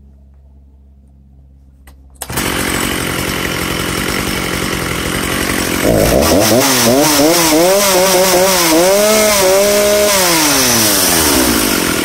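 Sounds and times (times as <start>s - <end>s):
chainsaw revving: 2.2s - 12.0s.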